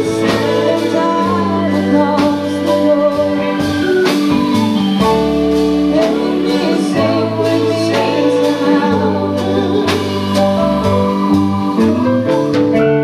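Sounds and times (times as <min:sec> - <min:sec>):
person singing: 0:00.0 - 0:12.1
live rock band playing ballad: 0:00.0 - 0:13.0.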